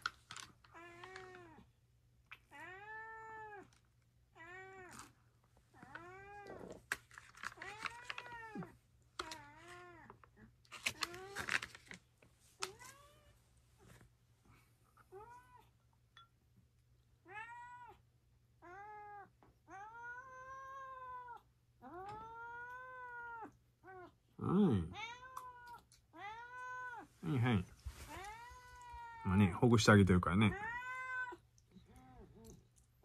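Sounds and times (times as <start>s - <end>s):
cat meowing: 2.5s - 3.7s, 4.4s - 5.1s, 5.8s - 6.8s, 7.6s - 10.2s, 17.2s - 18.0s, 18.6s - 24.2s, 24.8s - 27.1s, 28.0s - 29.4s, 30.5s - 32.4s.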